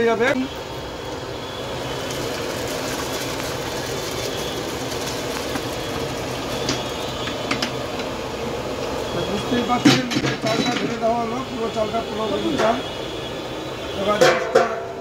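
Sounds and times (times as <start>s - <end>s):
steam rushing hiss: 0.0s - 15.0s
rice pouring into pot: 0.5s - 12.4s.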